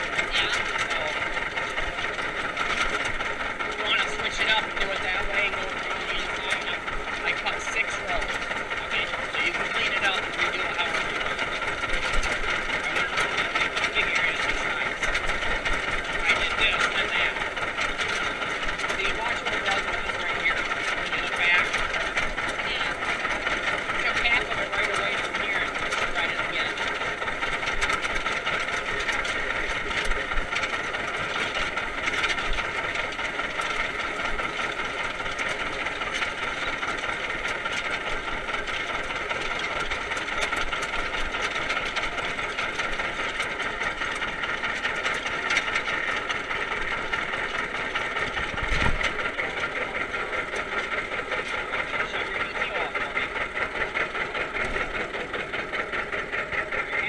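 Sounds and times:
tractor engine running: 0.0 - 57.0.

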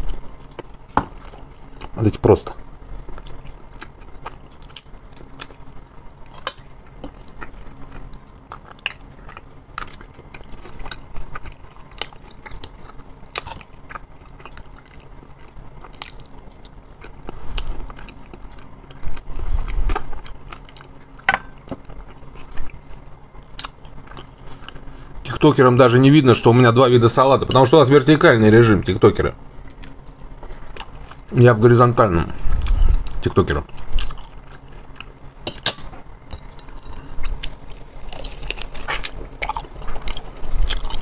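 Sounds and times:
man chewing food: 0.0 - 25.3, 29.4 - 31.4, 32.3 - 41.0
faint steady low hum: 0.0 - 41.0.

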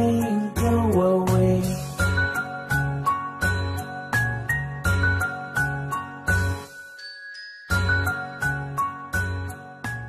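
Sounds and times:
bright children's instrumental music: 0.0 - 10.0
ringing chime tones: 3.4 - 9.6.

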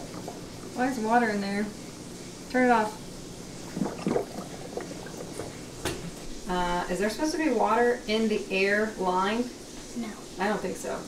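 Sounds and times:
aquarium water gurgling: 0.0 - 11.0.

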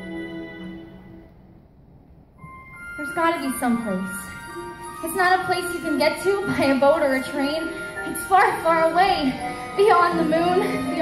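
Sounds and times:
soft instrumental accompaniment: 2.3 - 11.0.

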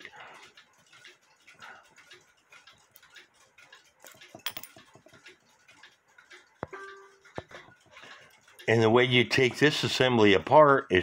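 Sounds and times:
small metallic clicks and ticks: 0.0 - 10.6
short ringing tone: 6.7 - 7.2.

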